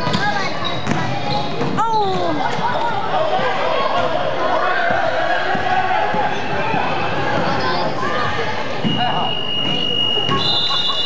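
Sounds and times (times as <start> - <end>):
voices and hubbub in a gym: 0.0 - 11.0.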